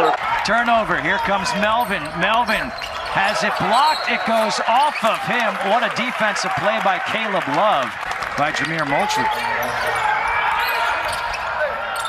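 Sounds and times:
faint voices in arena: 0.0 - 12.0.

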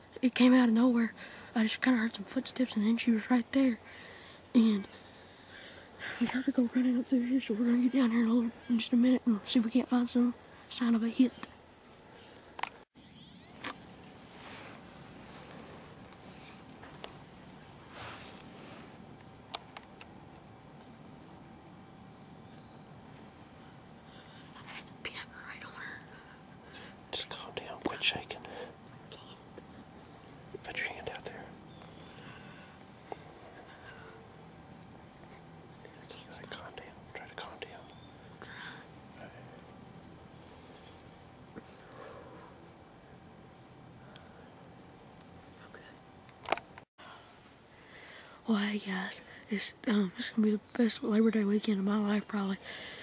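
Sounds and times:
rustling of clothing: 13.5 - 19.0
people whispering: 24.4 - 26.2, 27.1 - 29.5, 30.5 - 31.6, 35.8 - 39.6.

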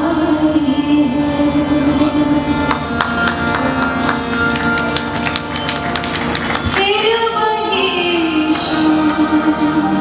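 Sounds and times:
person singing: 6.8 - 10.0.

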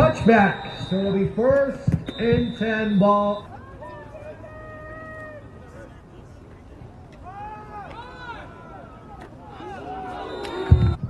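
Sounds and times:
distant people shouting: 0.0 - 5.6, 7.2 - 11.0
low crowd murmur: 3.2 - 11.0.

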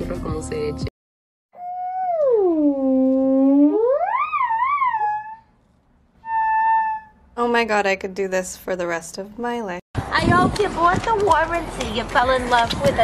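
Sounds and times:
steady higher theremin note: 1.6 - 5.4
theremin gliding tone: 1.6 - 5.5, 6.2 - 7.2.

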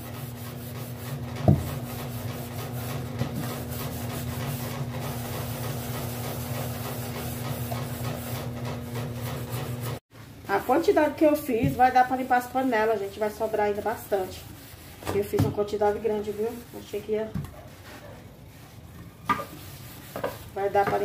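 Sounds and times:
sponge scrubbing a metal pan: 0.0 - 21.0.

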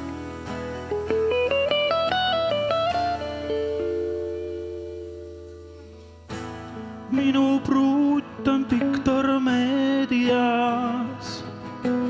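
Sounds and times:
electric guitar ringing notes: 0.0 - 11.2.

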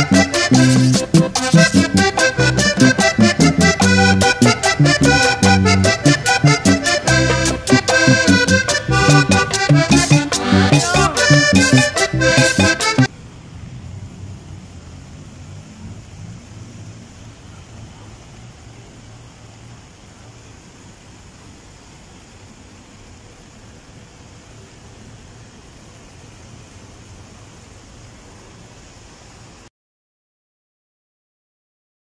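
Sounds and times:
traffic: 0.1 - 25.9
running water: 14.4 - 29.6.

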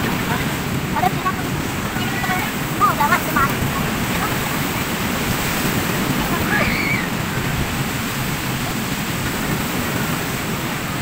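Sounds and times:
ocean surf breaking: 0.0 - 11.0
wind: 0.0 - 11.0.

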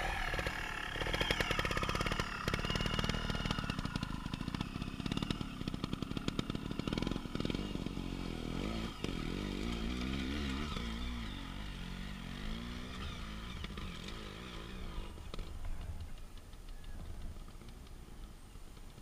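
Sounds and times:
dirt bike engine idling: 0.0 - 19.0
dirt bikes revving: 0.0 - 19.0.

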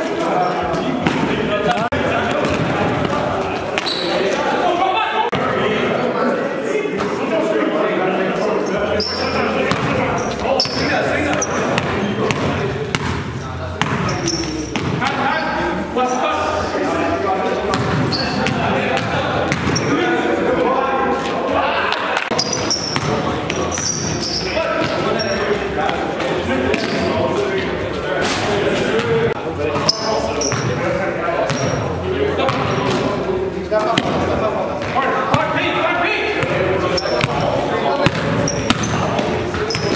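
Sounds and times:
voices of people: 0.0 - 39.9
sneaker squeaks: 0.3 - 1.3, 3.8 - 4.4, 8.6 - 15.7, 17.7 - 20.0, 22.3 - 25.8, 26.7 - 27.2, 29.8 - 30.8, 31.5 - 31.9, 36.8 - 39.9
players calling out: 8.4 - 28.0, 28.6 - 39.9
basketball bouncing on gym floor: 10.6 - 15.0, 17.7 - 19.8, 38.0 - 39.9.

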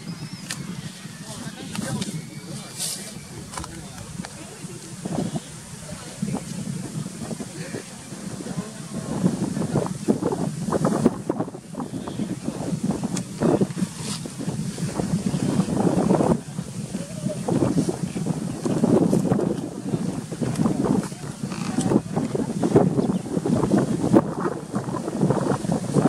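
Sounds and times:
wind buffeting microphone: 0.0 - 26.0.

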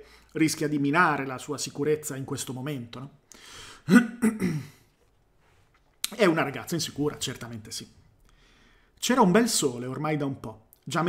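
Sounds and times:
man breathing in: 3.3 - 3.9, 8.2 - 9.0
man clearing his throat: 3.8 - 4.9.

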